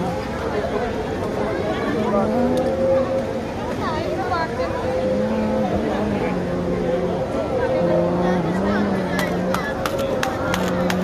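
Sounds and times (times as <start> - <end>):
crowded echoing hall: 0.0 - 11.0.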